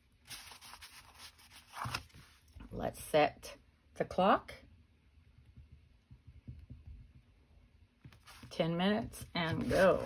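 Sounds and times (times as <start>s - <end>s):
cardstock rustling and scraping: 0.3s - 2.5s, 8.2s - 8.5s, 9.2s - 10.0s.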